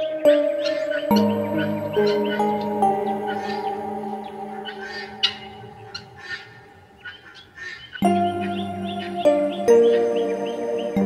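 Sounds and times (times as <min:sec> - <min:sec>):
harp music: 0:00.0 - 0:07.0, 0:08.0 - 0:11.0
gulls calling: 0:00.0 - 0:11.0.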